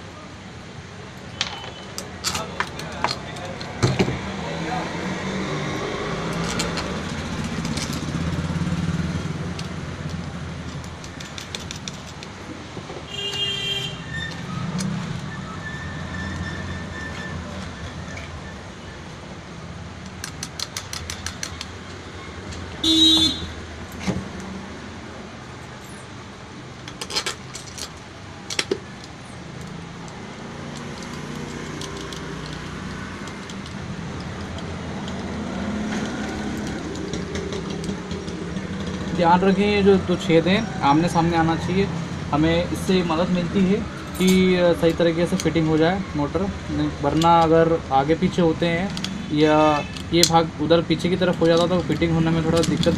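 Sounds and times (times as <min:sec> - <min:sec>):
road traffic rumble: 0:00.0 - 0:52.9
metallic clicks and clinks: 0:01.3 - 0:03.8, 0:06.2 - 0:12.4, 0:20.0 - 0:22.7, 0:26.8 - 0:38.4, 0:44.0 - 0:45.9, 0:47.0 - 0:52.9
car horn toots: 0:13.1 - 0:14.4, 0:22.8 - 0:23.6.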